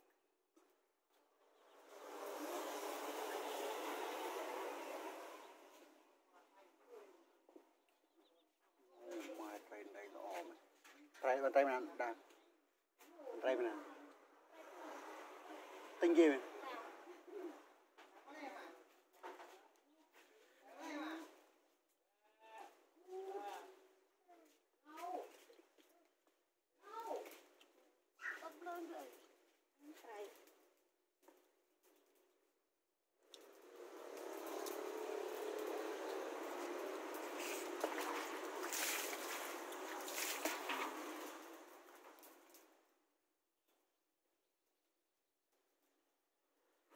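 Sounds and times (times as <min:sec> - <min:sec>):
water splashing and trickling: 0:01.4 - 0:06.0, 0:33.2 - 0:43.0.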